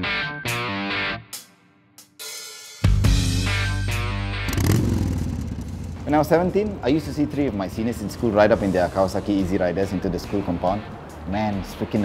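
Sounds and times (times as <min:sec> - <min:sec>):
guitar and drum music: 0:00.0 - 0:12.0
motorcycle engine starting and running: 0:04.1 - 0:08.9.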